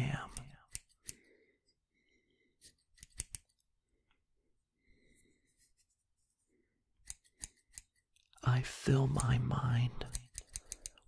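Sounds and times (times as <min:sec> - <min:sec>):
scissors snipping: 0:00.3 - 0:01.2, 0:02.6 - 0:03.7, 0:07.0 - 0:08.3, 0:10.1 - 0:11.0.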